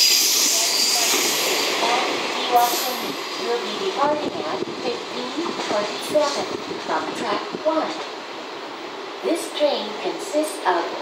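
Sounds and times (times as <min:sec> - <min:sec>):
train wheels rolling on track: 0:00.0 - 0:11.0.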